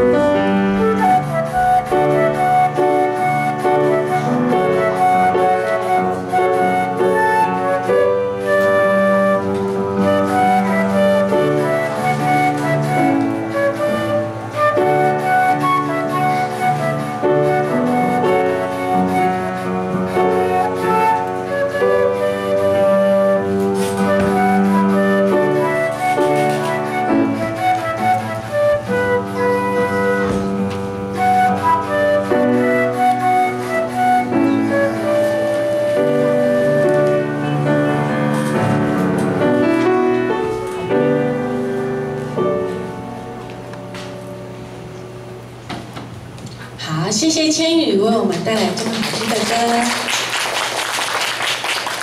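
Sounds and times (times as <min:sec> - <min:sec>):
piano chord ringing: 0:00.0 - 0:01.6
flute slow melody: 0:00.0 - 0:45.6
piano accompaniment: 0:00.0 - 0:47.2, 0:47.8 - 0:52.0.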